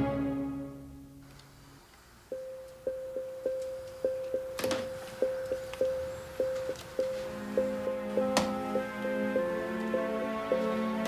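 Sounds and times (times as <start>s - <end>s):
orchestral chord: 0.0s - 1.2s, 7.2s - 11.0s
high plucked note repeating: 7.0s - 11.0s.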